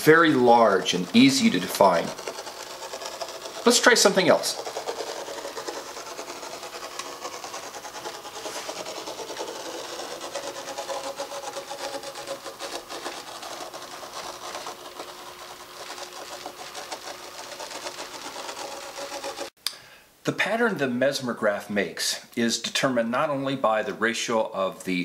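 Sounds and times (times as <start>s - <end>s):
machine gear whir and ticking: 0.0s - 19.5s.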